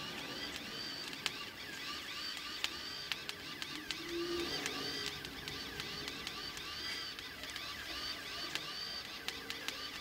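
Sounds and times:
welder arc crackling and popping: 0:00.0 - 0:10.0.

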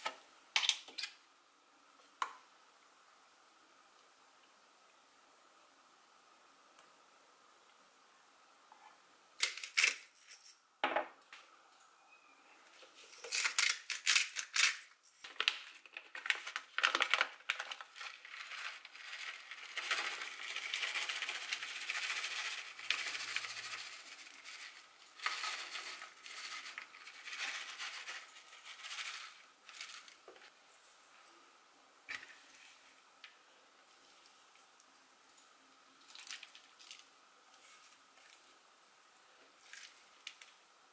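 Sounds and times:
plastic packet crinkling: 0:13.1 - 0:30.2.

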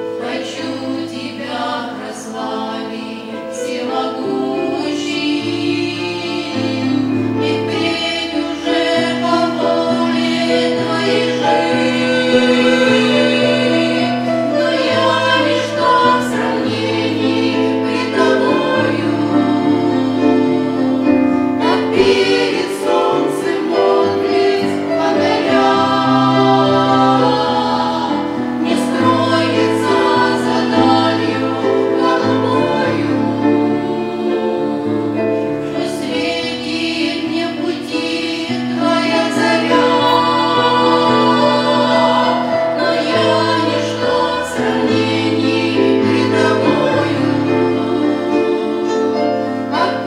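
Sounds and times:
women singing a hymn in harmony: 0:00.0 - 0:50.0.

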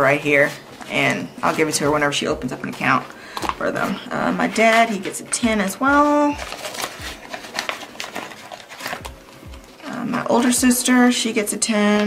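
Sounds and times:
plastic pouch rustling: 0:00.0 - 0:10.7.

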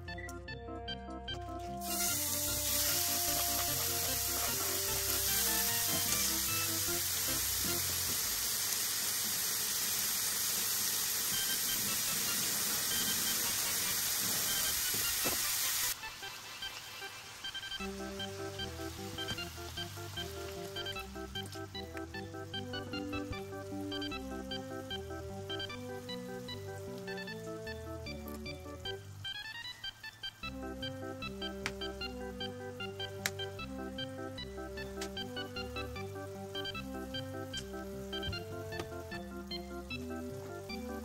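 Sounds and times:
light background music: 0:00.0 - 0:08.4, 0:17.6 - 0:41.0
meat sizzling in a frying pan: 0:01.8 - 0:27.2.

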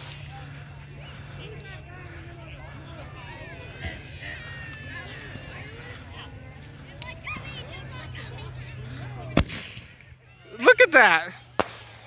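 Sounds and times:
firework launch shot: 0:09.4 - 0:09.9.

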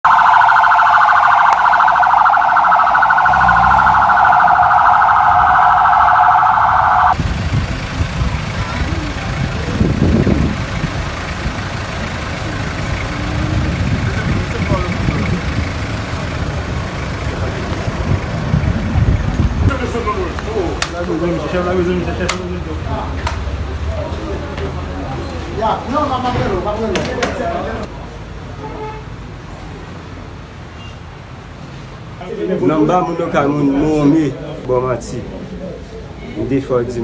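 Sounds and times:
siren warbling rapidly: 0:00.0 - 0:07.2
low outdoor rumble: 0:02.6 - 0:20.7
faint voices: 0:08.3 - 0:10.7.

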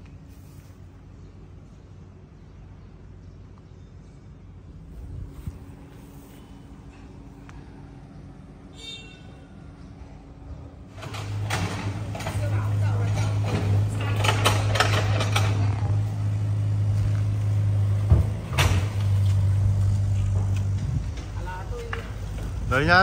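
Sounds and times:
excavator engine humming: 0:04.2 - 0:23.0.

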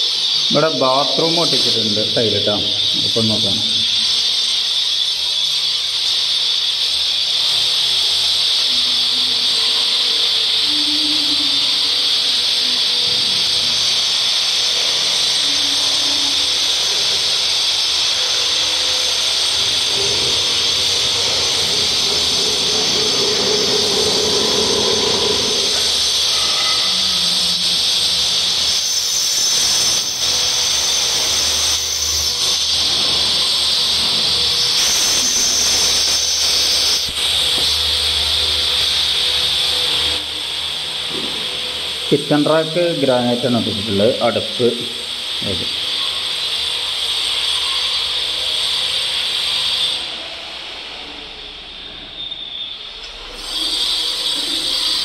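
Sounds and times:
power tool high-pitched whine: 0:00.0 - 0:55.0.

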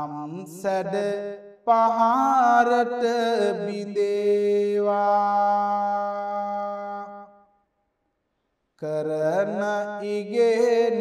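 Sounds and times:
man chanting: 0:00.0 - 0:07.4, 0:08.8 - 0:11.0.

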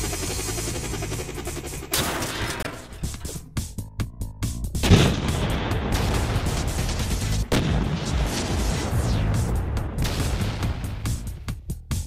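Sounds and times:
background music: 0:00.0 - 0:12.0
tank cannon blast: 0:04.8 - 0:11.4.

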